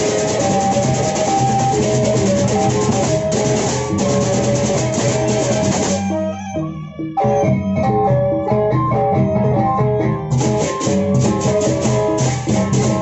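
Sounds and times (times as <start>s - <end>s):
crashing cymbals: 0.0s - 6.1s, 10.4s - 13.0s
large drums: 0.0s - 6.2s, 10.3s - 13.0s
gongs: 0.0s - 6.6s, 10.3s - 13.0s.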